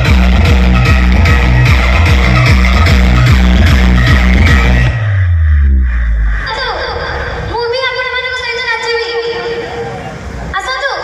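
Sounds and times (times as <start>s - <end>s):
loud electronic dance music: 0.0s - 9.6s
held synth note: 0.8s - 7.6s
falling pitch sweep: 0.8s - 8.2s.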